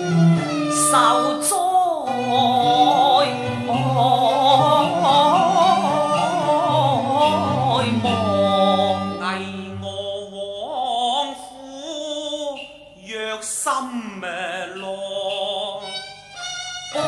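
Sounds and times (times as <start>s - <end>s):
instrumental accompaniment: 0.0s - 13.2s, 14.2s - 17.0s
person singing opera: 0.0s - 16.1s.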